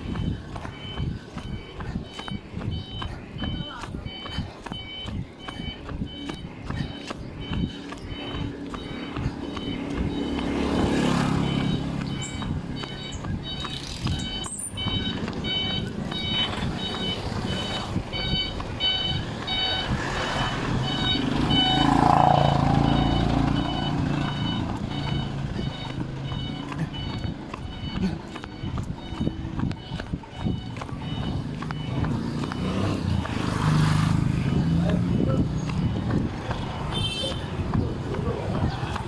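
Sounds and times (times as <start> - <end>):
vehicle engine running: 0.0 - 39.0.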